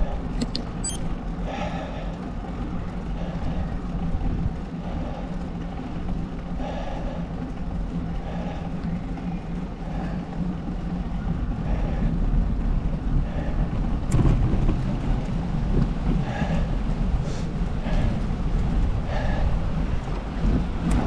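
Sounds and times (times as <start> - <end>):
wind and road noise: 0.0 - 21.0.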